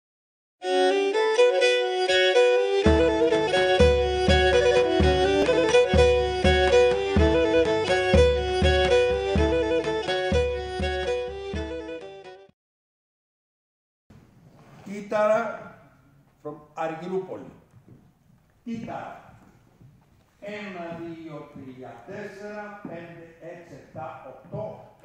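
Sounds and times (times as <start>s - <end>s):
bowed string melody: 0.9s - 12.0s
deep drum beat: 3.9s - 7.6s.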